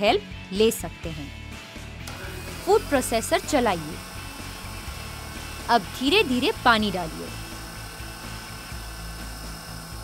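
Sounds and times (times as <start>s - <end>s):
food processor motor humming: 2.0s - 10.0s.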